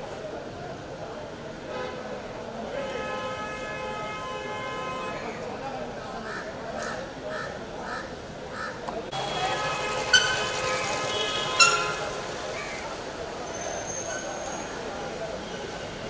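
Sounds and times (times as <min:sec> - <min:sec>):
street chatter: 0:00.0 - 0:16.0
crow cawing: 0:06.2 - 0:08.8.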